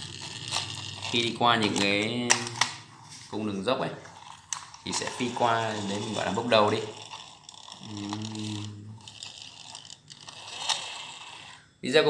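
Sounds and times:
toy car wheels ratcheting whir: 0.0 - 3.0, 4.0 - 11.8
person speaking: 1.1 - 4.1, 4.8 - 7.1, 7.8 - 9.2.

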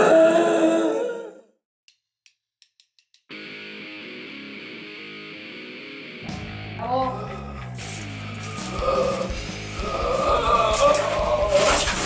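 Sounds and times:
man groaning: 7.0 - 11.8.

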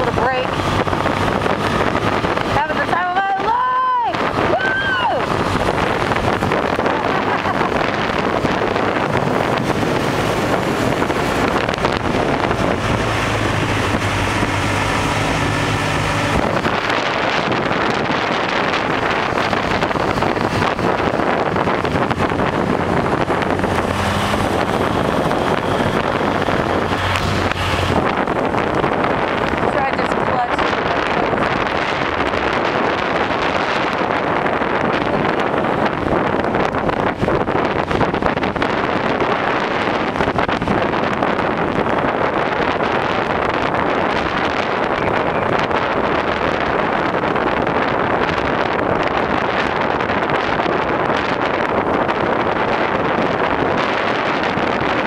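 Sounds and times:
motorcycle engine running: 0.0 - 55.0
wind buffeting microphone: 0.0 - 55.0.

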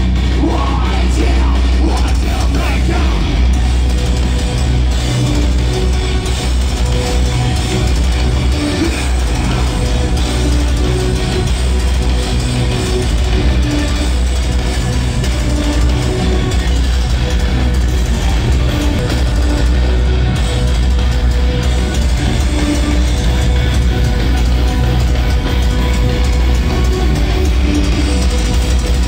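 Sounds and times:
heavy guitar band playing live: 0.0 - 29.0.

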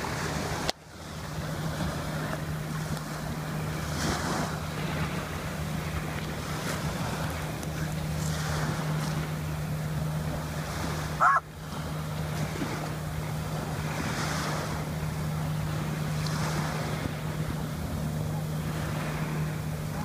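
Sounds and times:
small waves on beach: 0.0 - 20.0
steady low hum: 0.0 - 20.0.

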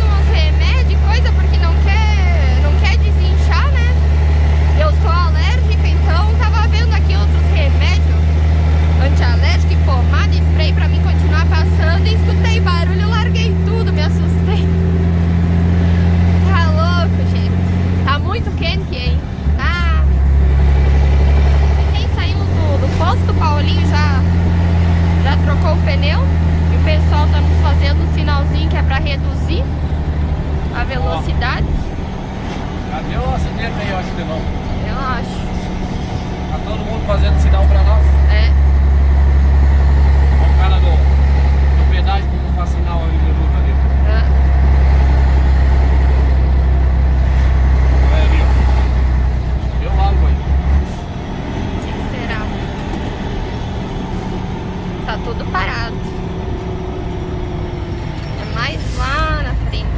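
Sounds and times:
truck diesel engine droning: 0.0 - 59.9.

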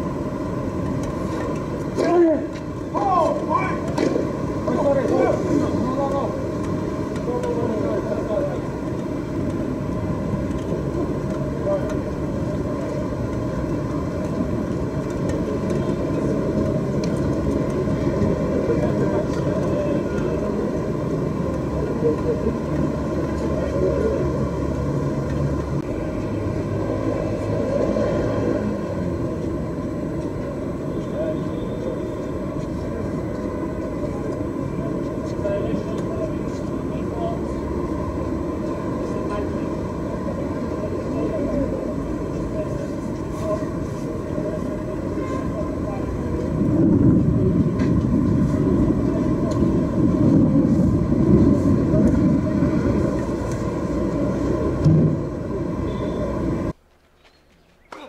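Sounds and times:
muffled low rumble: 45.8 - 55.8.

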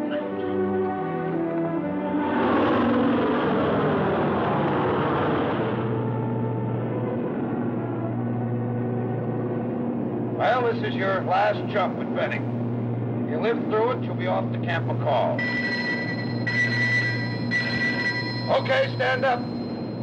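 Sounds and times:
propeller plane drone in cabin: 0.0 - 20.0.

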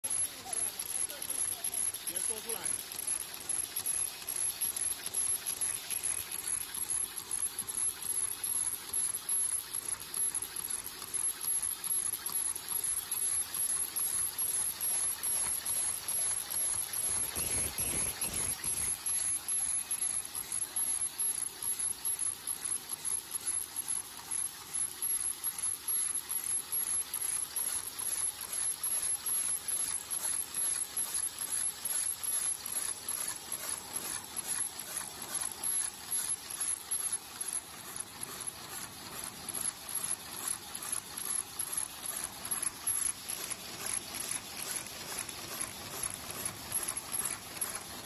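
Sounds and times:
high-pitched machine whine: 0.0 - 48.0
machine clattering clicks: 0.0 - 48.0.

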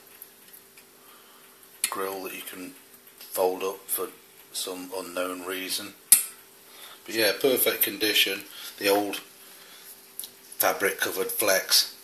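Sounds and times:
faint steady hum: 0.0 - 12.0
sharp click: 6.1 - 6.4.

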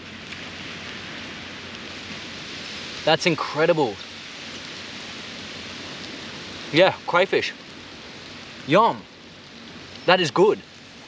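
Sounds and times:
surf washing on a beach: 0.0 - 11.0
man speaking: 3.1 - 4.0, 6.7 - 7.6, 8.7 - 9.0, 10.0 - 10.6.

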